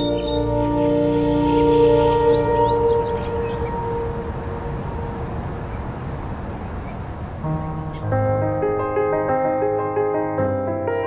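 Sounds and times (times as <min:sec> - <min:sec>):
sustained ambient music chord: 0:00.0 - 0:06.7.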